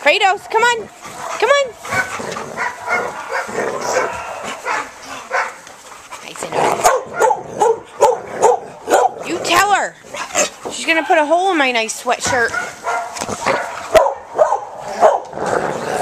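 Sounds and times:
dogs barking: 0:00.9 - 0:05.7, 0:06.4 - 0:11.5, 0:12.3 - 0:15.4
dog yelping: 0:01.1 - 0:05.6, 0:06.8 - 0:11.3, 0:12.5 - 0:15.3.

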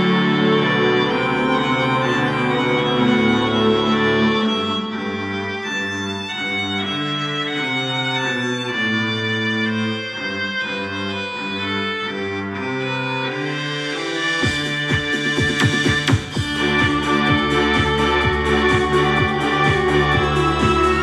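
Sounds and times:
bowed strings music on loudspeaker: 0:00.0 - 0:21.0.

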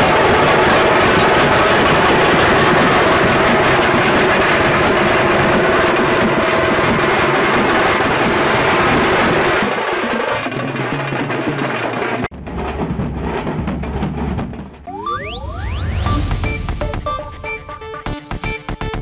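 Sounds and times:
large barrel drums beating: 0:00.0 - 0:19.0.

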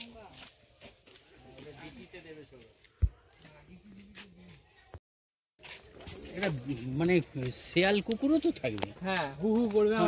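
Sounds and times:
insects droning: 0:00.0 - 0:05.0, 0:05.6 - 0:10.0.

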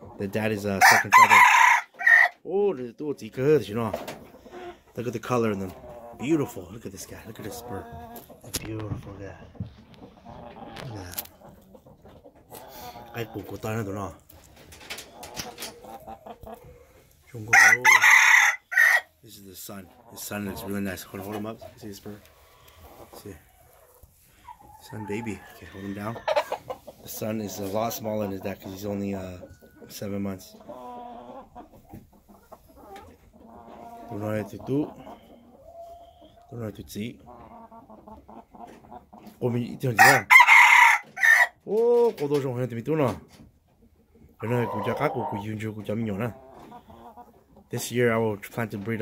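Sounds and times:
junglefowl clucking: 0:00.8 - 0:02.4, 0:03.9 - 0:08.8, 0:09.8 - 0:36.5, 0:37.2 - 0:41.5, 0:44.0 - 0:48.0
rooster crowing: 0:00.8 - 0:02.4, 0:17.5 - 0:19.1, 0:40.0 - 0:41.5.

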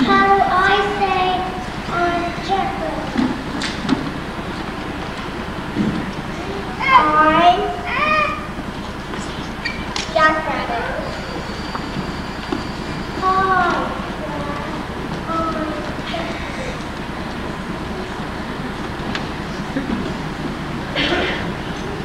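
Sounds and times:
young child's voice: 0:00.0 - 0:03.5, 0:06.3 - 0:08.6, 0:10.0 - 0:11.3, 0:13.2 - 0:16.8
steady background hiss: 0:00.0 - 0:22.0.

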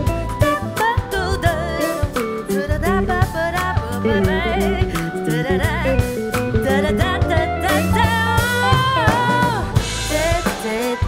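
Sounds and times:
live band playing: 0:00.0 - 0:11.0
woman singing: 0:00.0 - 0:11.0.

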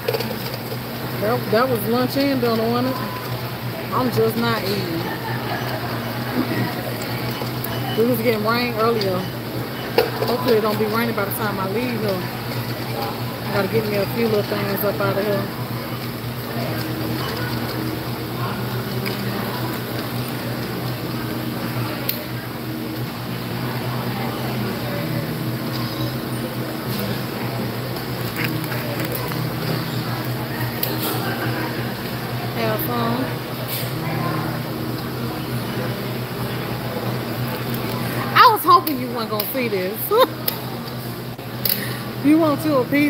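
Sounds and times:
distant voices chatter: 0:00.0 - 0:43.0
steady low hum: 0:00.0 - 0:43.0.

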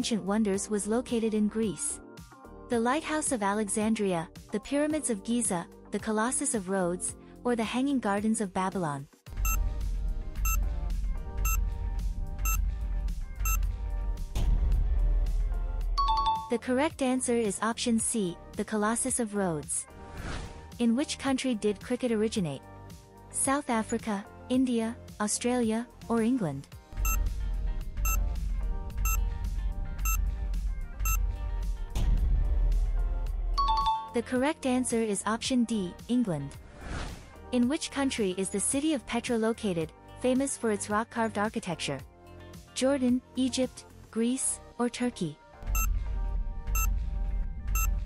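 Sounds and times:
bass-heavy timer music: 0:09.3 - 0:16.2, 0:27.0 - 0:33.9, 0:45.6 - 0:48.0
countdown timer music with heavy bass: 0:45.7 - 0:45.9, 0:47.7 - 0:48.0.

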